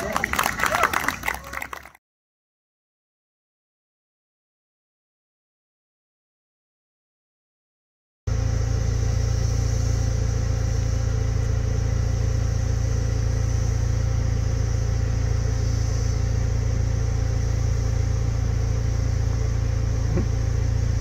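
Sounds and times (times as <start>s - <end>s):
car rumble inside cabin: 8.3s - 21.0s
high-pitched hum: 8.3s - 21.0s.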